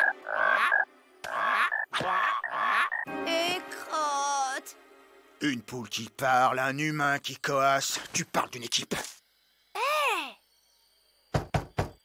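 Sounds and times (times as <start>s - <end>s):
child exclaiming: 9.8s - 10.4s
knuckles knocking on door: 11.3s - 12.0s.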